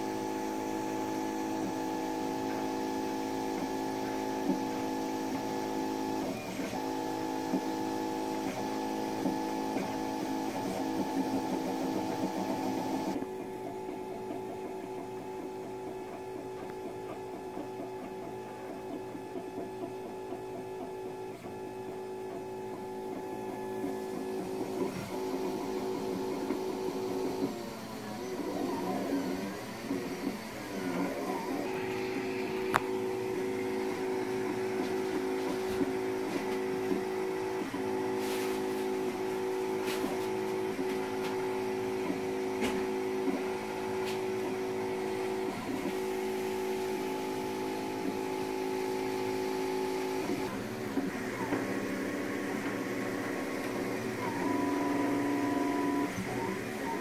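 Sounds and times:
cooling fan whirring: 0:00.0 - 0:57.0
printer motors whining: 0:00.0 - 0:57.0.

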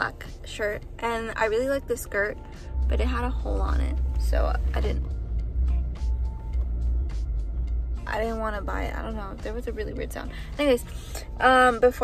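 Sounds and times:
vehicle rumble inside car: 0:00.0 - 0:12.0.

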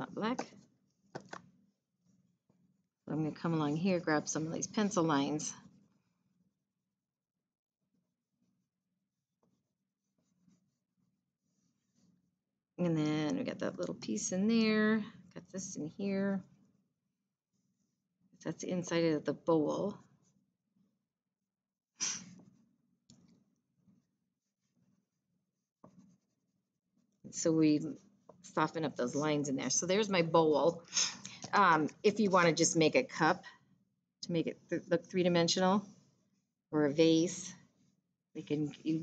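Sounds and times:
crayon scratching on paper: 0:09.5 - 0:12.2, 0:23.9 - 0:30.0.

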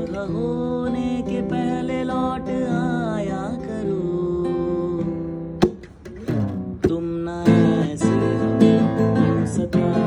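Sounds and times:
man singing: 0:00.0 - 0:05.6, 0:06.3 - 0:10.0
strummed acoustic guitar: 0:00.0 - 0:10.0.

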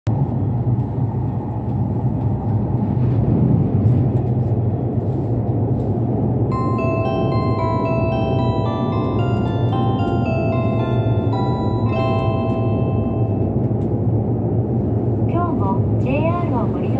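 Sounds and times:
train cabin rumble: 0:00.1 - 0:16.9
bell-like chime melody: 0:06.5 - 0:13.5.

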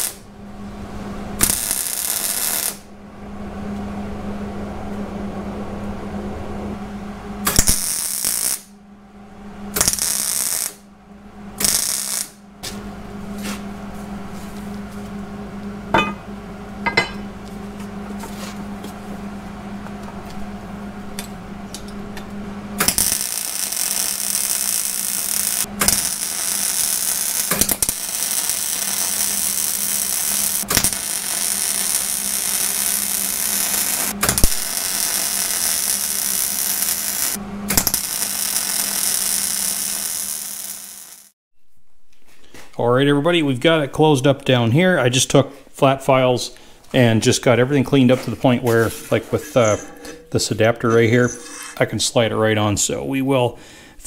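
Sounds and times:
welding arc crackling hiss: 0:00.0 - 0:00.2, 0:01.4 - 0:02.9, 0:07.5 - 0:08.7, 0:09.8 - 0:10.8, 0:11.6 - 0:12.4, 0:22.8 - 0:41.4
steady hum: 0:00.0 - 0:41.1, 0:44.5 - 0:54.0.

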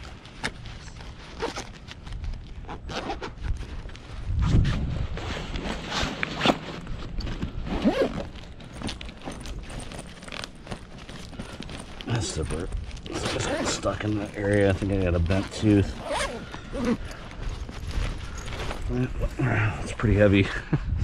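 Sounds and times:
bag scraping and rustling: 0:00.0 - 0:20.4
backpack zipper pulled: 0:00.5 - 0:19.2.

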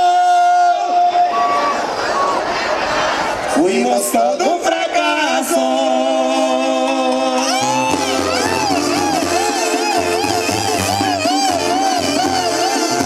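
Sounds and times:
brass band playing: 0:04.7 - 0:13.0
tuba: 0:06.3 - 0:13.0.

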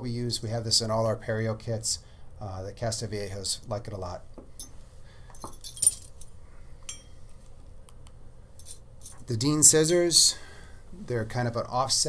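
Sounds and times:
metal instruments clinking: 0:04.6 - 0:07.3, 0:08.6 - 0:09.5.

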